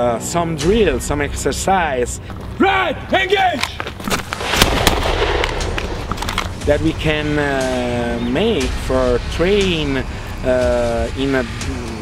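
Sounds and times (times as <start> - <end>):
pistol shots: 4.3 - 6.6.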